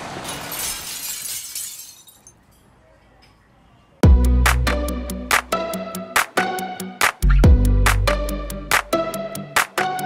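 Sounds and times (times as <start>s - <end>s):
glass shattering and tinkling: 0.2s - 2.6s.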